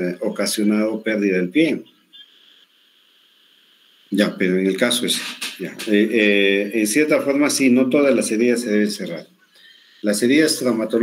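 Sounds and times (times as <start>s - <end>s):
faint line hiss: 0.0s - 11.0s.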